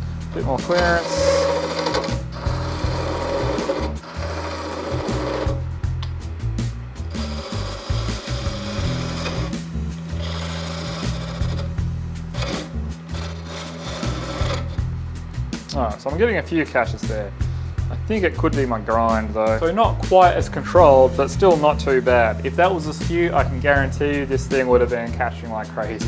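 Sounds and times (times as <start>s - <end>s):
wood lathe running: 0.0s - 5.7s, 7.1s - 14.9s
background music: 0.0s - 26.0s
chisel scraping wood on lathe: 0.3s - 5.7s, 7.1s - 14.9s.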